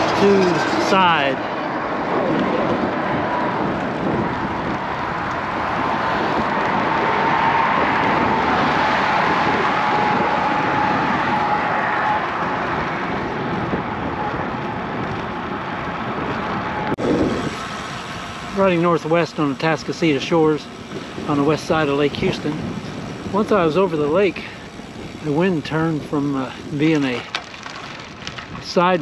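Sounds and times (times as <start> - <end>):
road traffic passing: 0.0 - 29.0
wind rushing on microphone: 0.0 - 29.0.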